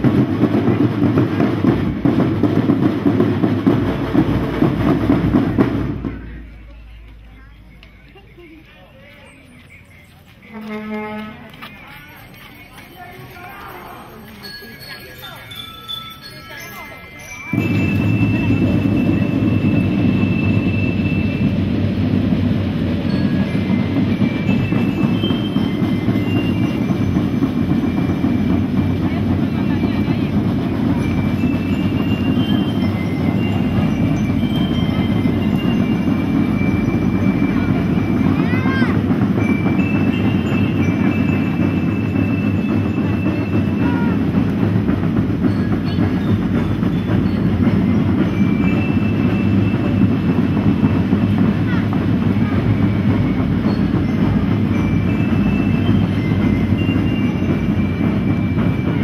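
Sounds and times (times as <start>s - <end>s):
school drum band drumming: 0.0s - 6.5s, 17.4s - 59.0s.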